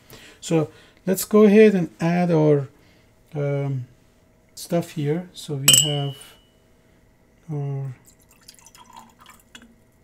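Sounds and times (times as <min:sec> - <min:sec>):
liquid trickling into beaker: 0:08.0 - 0:09.7.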